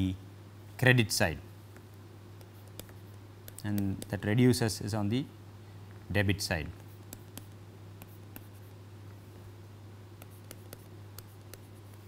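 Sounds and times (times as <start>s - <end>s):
steady low hum: 0.0s - 12.0s
stylus tapping on tablet: 1.7s - 4.2s, 6.8s - 8.7s, 10.2s - 12.0s.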